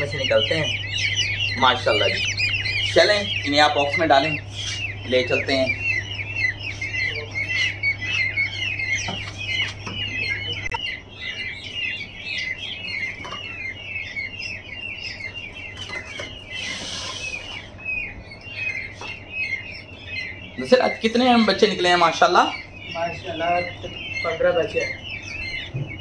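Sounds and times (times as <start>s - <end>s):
low steady hum: 0.0s - 26.0s
peachicks peeping: 0.0s - 26.0s.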